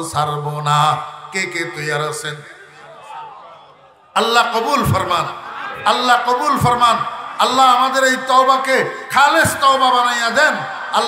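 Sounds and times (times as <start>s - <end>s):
man chanting into a microphone: 4.2s - 11.0s.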